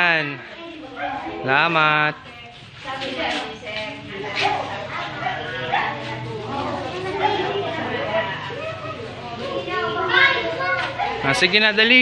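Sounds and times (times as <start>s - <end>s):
children chattering: 0.0s - 12.0s
dog barking: 1.0s - 1.4s, 4.4s - 6.1s, 7.2s - 7.6s, 10.9s - 11.4s.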